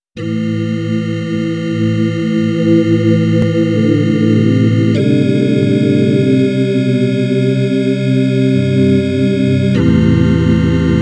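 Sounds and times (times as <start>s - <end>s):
dark synthesizer chord music: 0.2s - 11.0s.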